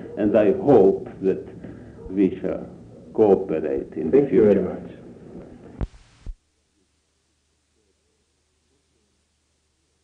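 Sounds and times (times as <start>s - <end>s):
faint tape hiss: 0.0s - 10.0s.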